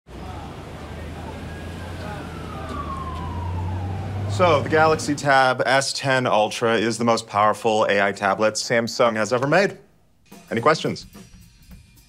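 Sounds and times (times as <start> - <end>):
distant siren gliding down: 0.1 - 5.5
low traffic rumble: 0.1 - 7.0.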